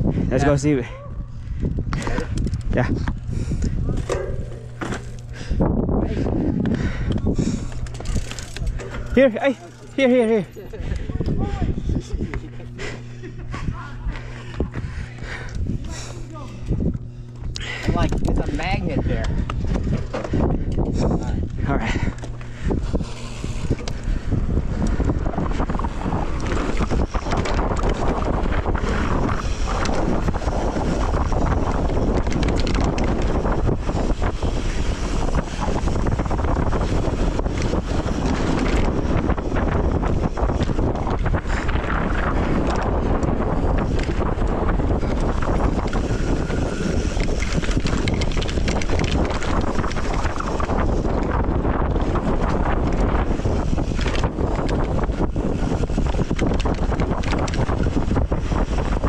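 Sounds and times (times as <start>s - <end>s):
wind noise on microphone: 0.0s - 59.0s
bike clattering and knocking: 3.8s - 5.6s.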